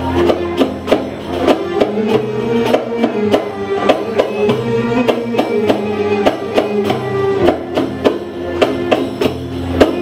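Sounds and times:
held melodic line: 0:00.0 - 0:10.0
sharp percussive strokes: 0:00.0 - 0:10.0.

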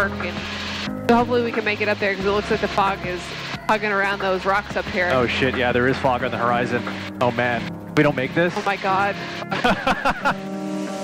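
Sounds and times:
sustained music tones: 0:00.0 - 0:11.0
two people laughing: 0:09.4 - 0:10.5.

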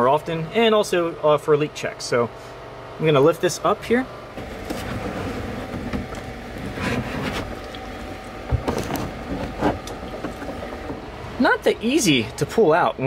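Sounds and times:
plastic tank scraping: 0:04.4 - 0:11.2.

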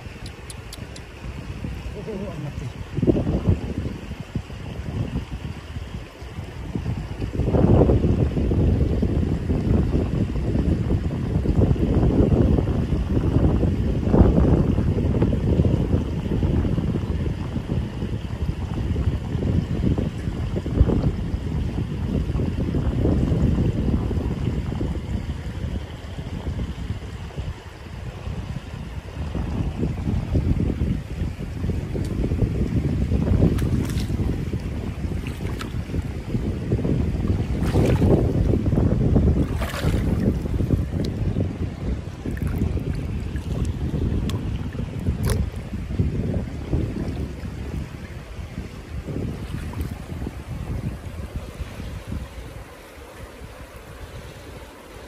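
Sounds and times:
river water running over stones: 0:00.0 - 0:09.8, 0:29.1 - 0:55.0
wind buffeting microphone: 0:00.0 - 0:55.0.

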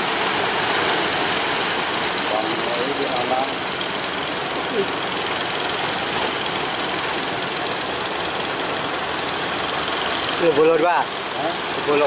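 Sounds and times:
boat engines running: 0:00.0 - 0:12.0.

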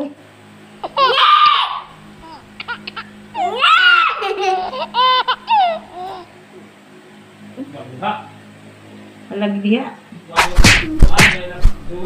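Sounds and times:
child laughing and squealing: 0:00.8 - 0:06.3.

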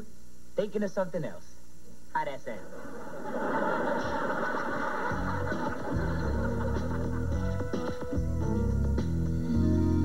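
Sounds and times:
studio audience laughing: 0:02.6 - 0:08.2.

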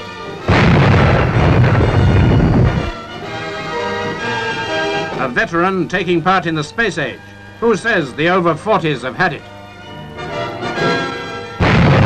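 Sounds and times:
music: 0:00.0 - 0:12.0
naval gun blast: 0:00.4 - 0:03.0, 0:10.8 - 0:12.0.

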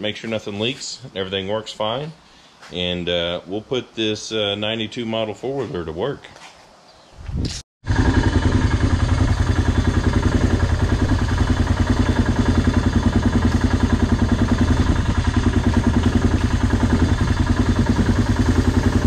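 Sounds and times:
engine idling: 0:07.9 - 0:19.0.

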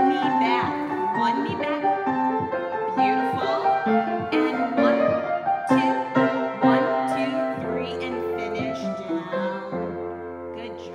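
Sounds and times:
piano melody over chords: 0:00.0 - 0:10.9.

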